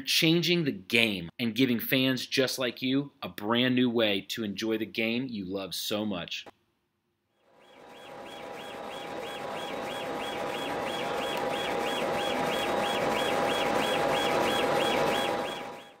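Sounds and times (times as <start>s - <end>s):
machine humming with steady tone: 7.4s - 16.0s.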